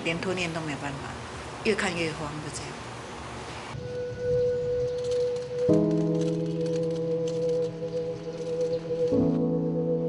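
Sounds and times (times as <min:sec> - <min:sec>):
soft background music note: 0:03.8 - 0:10.0.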